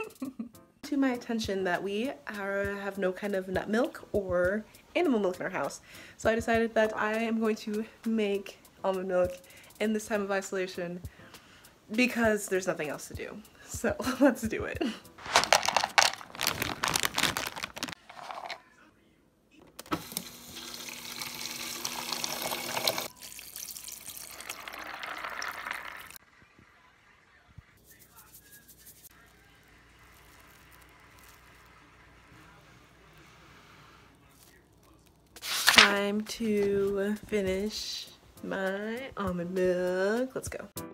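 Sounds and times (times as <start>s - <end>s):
faint handling sounds: 15.2s - 18.8s, 27.8s - 37.1s
water pouring into plastic bowl: 20.6s - 26.2s.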